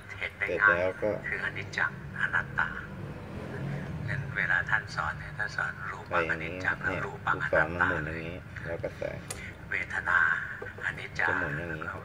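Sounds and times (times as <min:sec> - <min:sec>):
man speaking: 0:00.1 - 0:03.0, 0:04.1 - 0:12.0.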